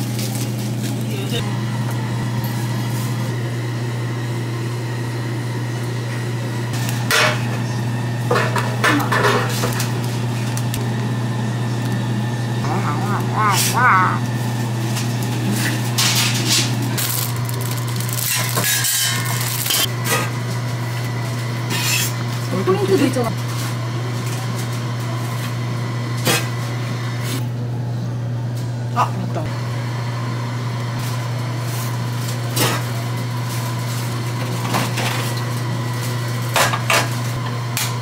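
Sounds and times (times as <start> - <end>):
kitchen equipment humming: 0.0 - 38.0
short wavering vocal sound: 12.6 - 14.3
utensils and dishes clinking: 15.5 - 20.3.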